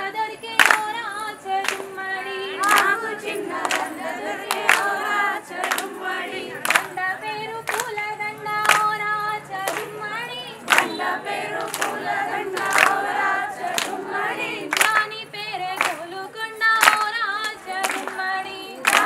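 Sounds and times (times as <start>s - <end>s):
rhythmic hand claps: 0.0s - 19.0s
women singing folk song in chorus: 0.0s - 19.0s.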